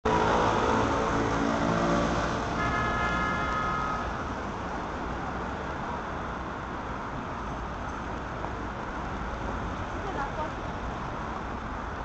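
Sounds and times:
motor vehicle passing: 0.1s - 2.6s.

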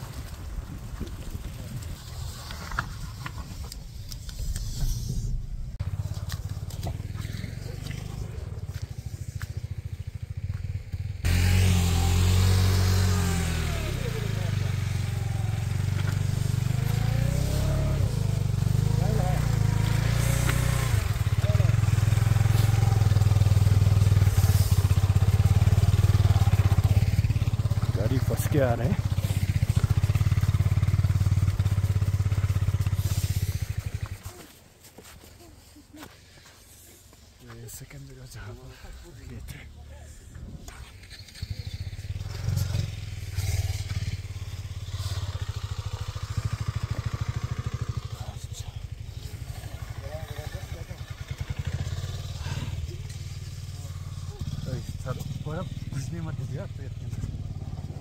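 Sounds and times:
motorcycle engine revving: 0.0s - 34.5s, 40.3s - 58.0s.

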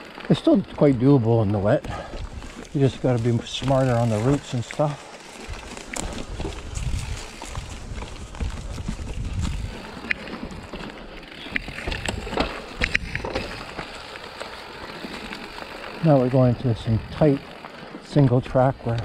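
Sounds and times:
bike rattling and clicking: 0.0s - 19.0s
tyres rumbling on dirt: 0.0s - 19.0s.

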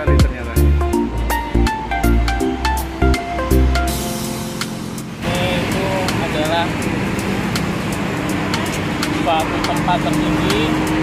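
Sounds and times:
man speaking: 0.0s - 0.9s, 5.2s - 6.8s
cars and buses passing: 0.0s - 11.0s.

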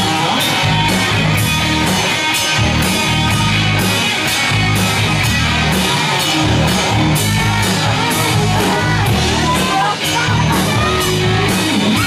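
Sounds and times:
heavy bass line: 0.0s - 12.0s.

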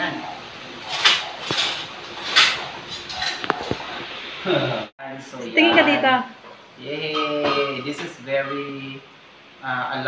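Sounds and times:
cookware being handled: 0.8s - 4.0s.

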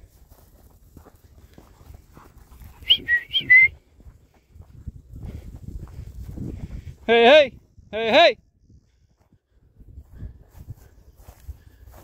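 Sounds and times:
high gliding whistle notes: 2.8s - 3.7s.

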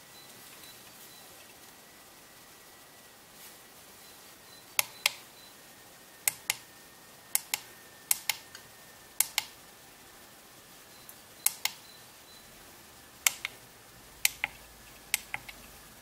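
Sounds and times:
pushbutton clicks: 4.8s - 5.2s, 7.4s - 8.4s, 9.2s - 9.5s, 11.4s - 11.8s, 13.3s - 13.6s.

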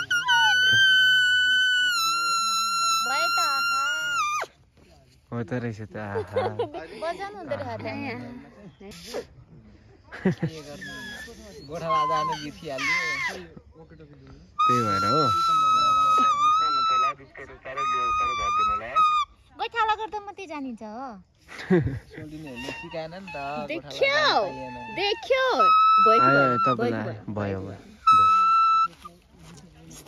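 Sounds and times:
leaf whistle squeaky notes: 0.0s - 4.5s, 10.5s - 13.4s, 14.6s - 19.8s, 22.4s - 27.1s, 27.9s - 29.2s.

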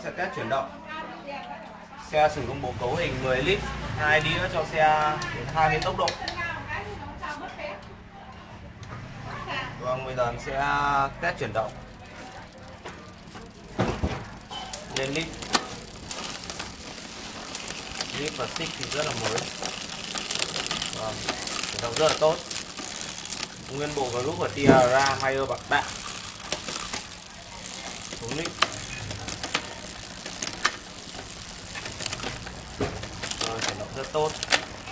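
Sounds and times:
bike chain running over cassette: 10.1s - 34.9s.

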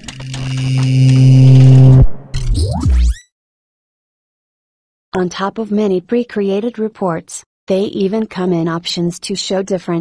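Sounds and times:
low drone tone: 0.0s - 2.6s.

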